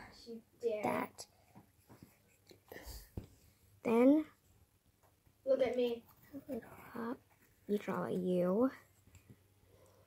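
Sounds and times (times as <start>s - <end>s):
person speaking: 5.5s - 8.9s.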